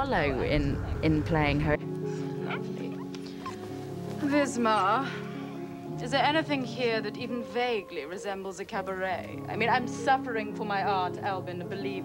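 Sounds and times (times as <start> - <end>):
soft film score chord: 0.0 - 12.0.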